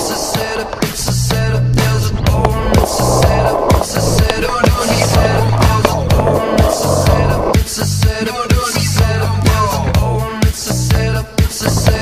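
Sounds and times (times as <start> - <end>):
music with steady beat: 0.0 - 12.0
skateboard wheels rolling on concrete: 0.0 - 12.0.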